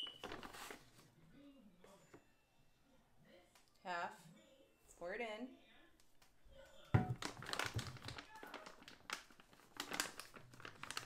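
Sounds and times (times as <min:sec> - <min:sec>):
plastic bag crinkling: 0:07.0 - 0:11.0.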